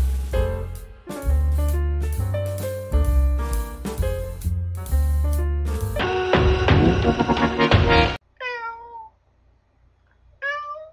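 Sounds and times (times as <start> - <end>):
music: 0.0 - 8.2
cat meowing: 8.4 - 9.2, 10.4 - 10.9.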